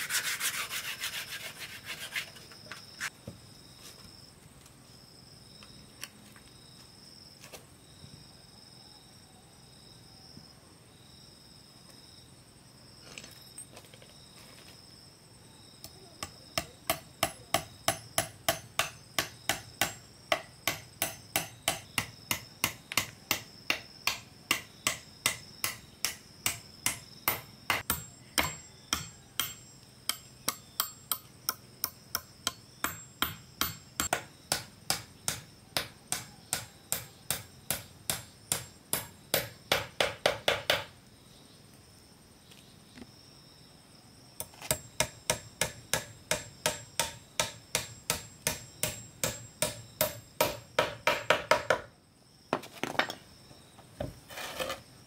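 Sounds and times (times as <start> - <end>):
insects chirring: 0.0 - 55.0.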